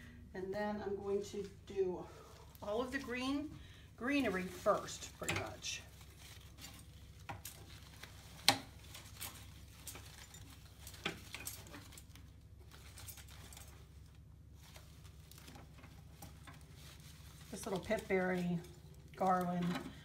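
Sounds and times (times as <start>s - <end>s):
artificial leaves rustling: 1.0s - 20.0s.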